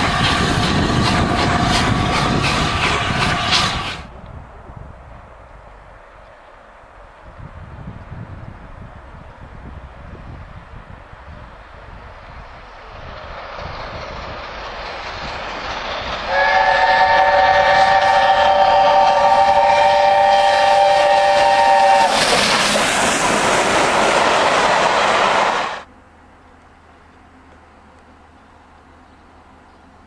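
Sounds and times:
steam locomotive passing: 0.0s - 26.0s.

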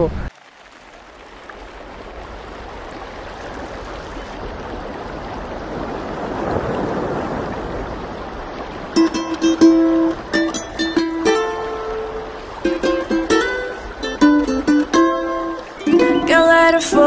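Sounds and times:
rushing water noise: 0.0s - 17.0s.

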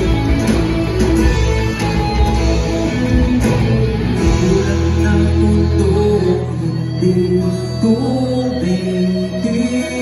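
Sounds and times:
electric guitars: 0.0s - 10.0s
live rock band playing: 0.0s - 10.0s.

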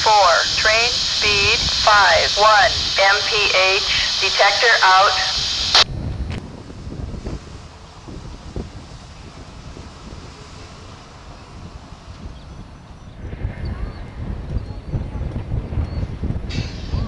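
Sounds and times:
wind rumbling on microphone: 0.0s - 17.0s
pickup truck crossing railroad tracks: 6.5s - 13.2s.

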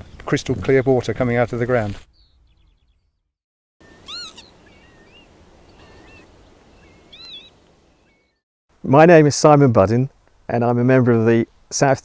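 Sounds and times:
small bird chirps: 2.1s - 3.2s, 3.8s - 8.4s
bird rising and falling call: 3.8s - 8.4s.

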